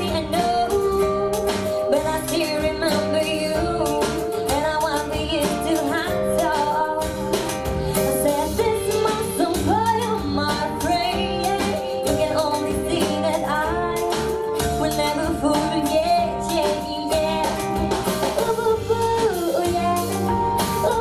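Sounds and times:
backing track with guitar and beat: 0:00.0 - 0:21.0
girl singing into microphone: 0:00.0 - 0:21.0.

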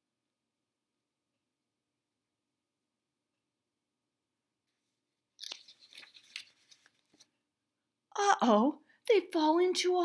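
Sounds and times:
paper page turning: 0:05.4 - 0:07.4.

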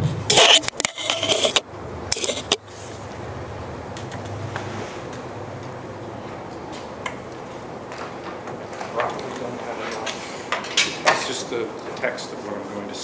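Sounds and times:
rustling scraping near microphone: 0:00.0 - 0:03.1, 0:04.4 - 0:05.1.

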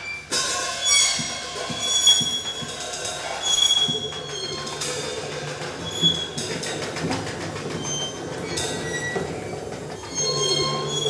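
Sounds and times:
high metallic screeching tones: 0:00.0 - 0:11.0.

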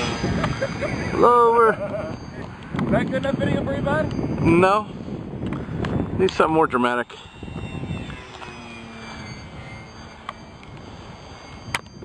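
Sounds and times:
model plane motor fly-by: 0:00.0 - 0:12.0.

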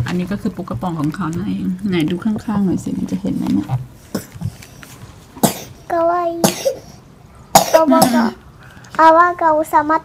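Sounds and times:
child coughing: 0:04.1 - 0:04.5, 0:05.4 - 0:08.4.

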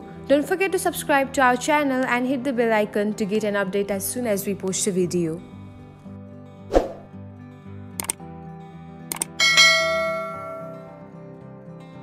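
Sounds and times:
light background music: 0:00.0 - 0:12.0
mouse clicks: 0:08.0 - 0:08.2, 0:09.1 - 0:09.3
bright bell ding: 0:09.4 - 0:11.0.

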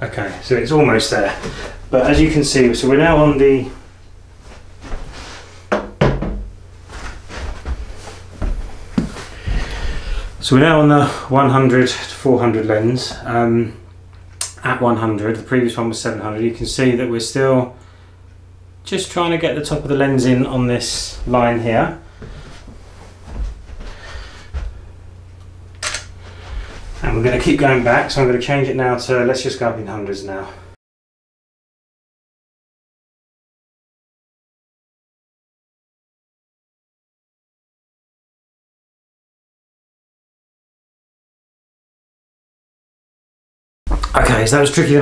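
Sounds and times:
low rumbling: 0:00.0 - 0:05.6
low steady hum: 0:00.0 - 0:30.8, 0:43.9 - 0:45.0
soft low thumps: 0:01.4 - 0:05.1, 0:05.7 - 0:10.4, 0:19.8 - 0:25.0.

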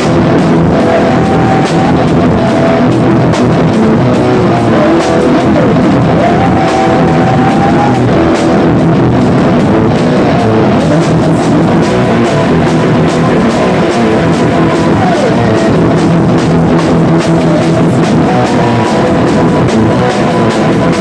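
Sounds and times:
drum kit and cymbals: 0:00.0 - 0:21.0
electric guitar slide: 0:00.0 - 0:21.0
rock band playing live: 0:00.0 - 0:21.0.

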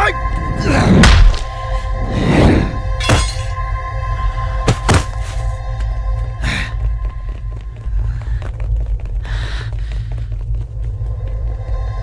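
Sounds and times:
dramatic film score music: 0:00.0 - 0:12.0
heavy low rumble: 0:05.4 - 0:12.0.

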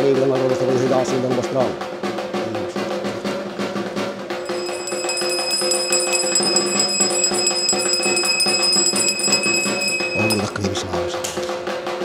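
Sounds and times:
bell ringing continuously: 0:04.4 - 0:10.8.

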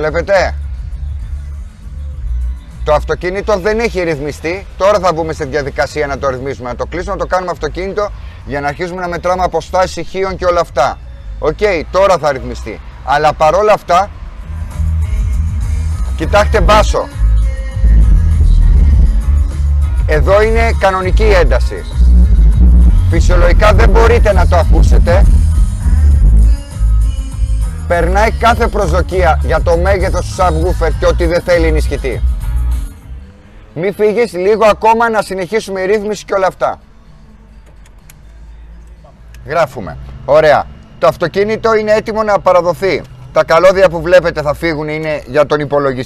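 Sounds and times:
heavy bass music in car: 0:00.0 - 0:33.8.

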